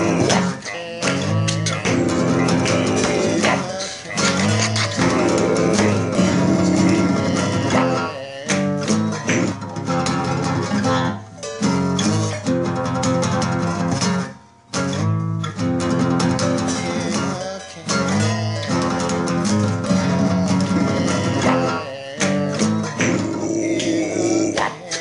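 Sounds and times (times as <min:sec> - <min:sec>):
acoustic guitar strumming chords: 0:00.0 - 0:25.0.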